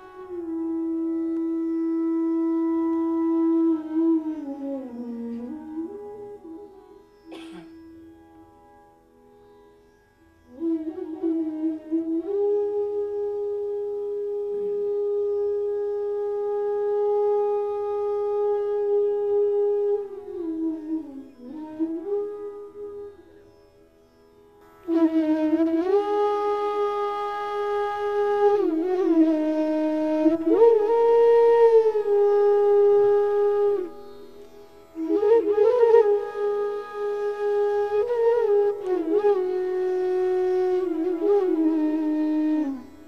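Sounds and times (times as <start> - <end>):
bamboo flute playing: 0.0 - 8.7, 10.4 - 43.0.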